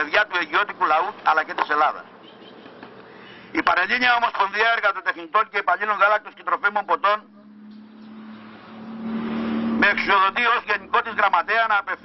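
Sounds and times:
road vehicle approaching: 0:05.3 - 0:12.0.

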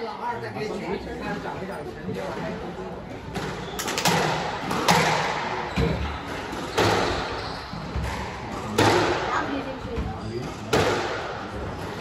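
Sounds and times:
squash ball hits echoing: 0:03.3 - 0:12.0.

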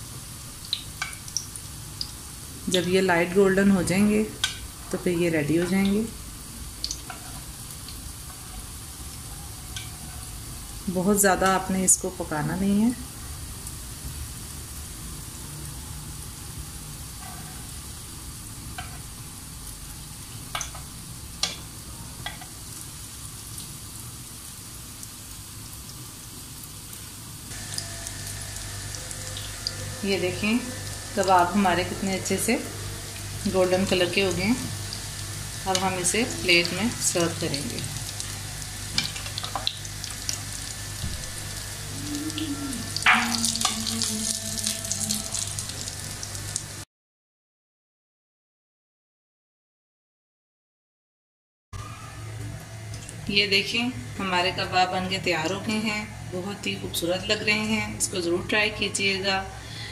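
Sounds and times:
cutlets sizzling in hot oil: 0:00.0 - 0:46.8.

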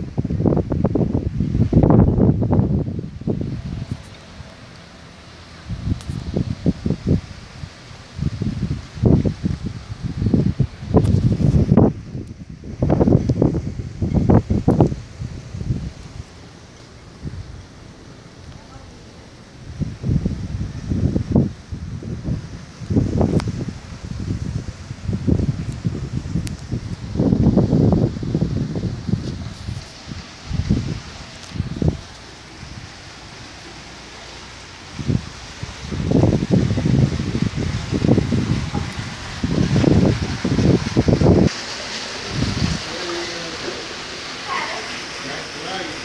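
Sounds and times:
wind buffeting microphone: 0:00.0 - 0:46.0.

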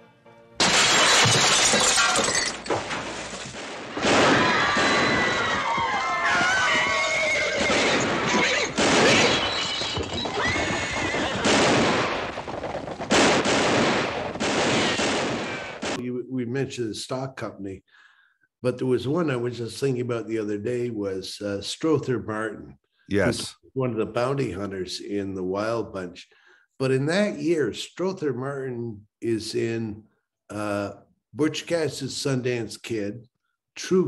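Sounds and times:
film score music: 0:00.0 - 0:00.6
glass bottle smashing: 0:00.6 - 0:04.2, 0:07.9 - 0:10.4
horses neighing: 0:04.5 - 0:12.3.

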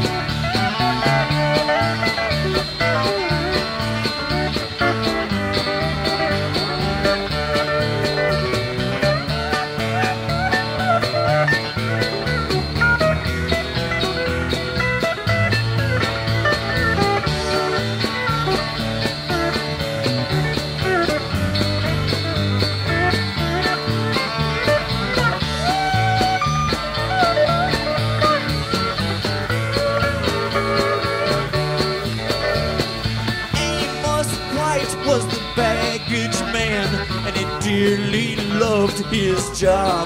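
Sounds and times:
country-rock band playing: 0:00.0 - 0:40.0
pedal steel guitar lead: 0:00.0 - 0:40.0.

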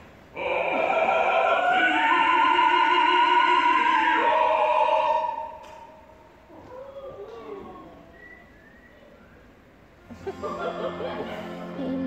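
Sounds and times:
operatic singing: 0:00.3 - 0:06.4.

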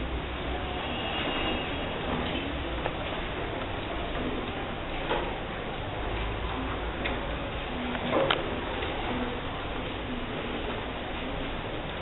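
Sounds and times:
steady rumbling noise: 0:00.0 - 0:12.0.

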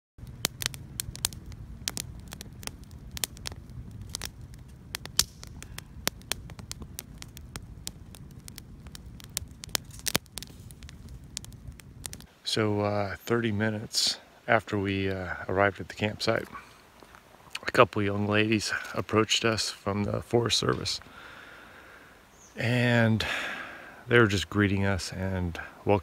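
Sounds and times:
campfire crackling and popping: 0:00.2 - 0:26.0
low steady fire rumble: 0:00.2 - 0:26.0.

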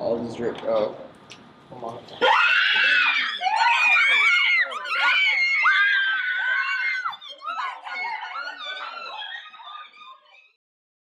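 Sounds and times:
teenagers shouting: 0:02.2 - 0:10.4.

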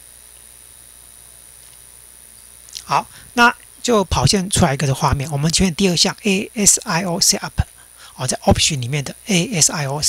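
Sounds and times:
background hiss: 0:00.0 - 0:10.0
faint high-pitched whine: 0:00.0 - 0:10.0.

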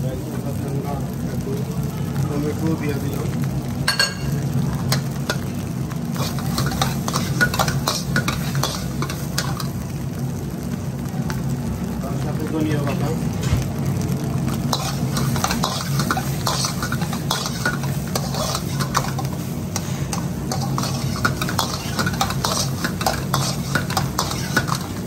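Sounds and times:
rice sizzling: 0:00.0 - 0:25.0
metal spatula scraping a wok: 0:06.1 - 0:09.7, 0:14.7 - 0:25.0.

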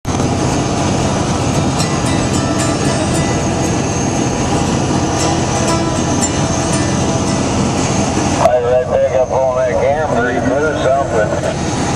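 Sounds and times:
vehicle road and engine noise: 0:00.1 - 0:11.9.

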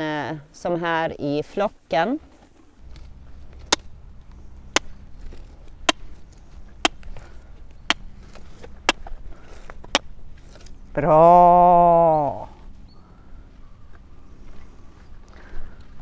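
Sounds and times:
low steady rumble: 0:02.6 - 0:16.0.

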